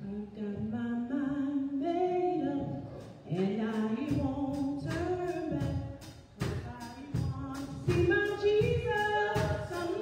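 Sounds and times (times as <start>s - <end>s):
woman singing gospel: 0.0s - 10.0s.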